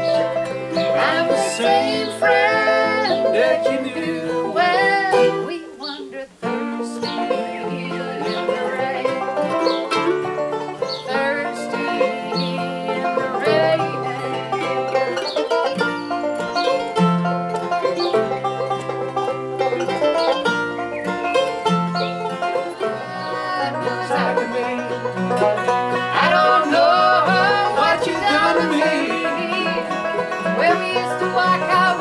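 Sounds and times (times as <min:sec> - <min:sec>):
acoustic guitars picking: 0:00.0 - 0:32.0
banjo: 0:00.0 - 0:32.0
mandolin: 0:00.0 - 0:32.0.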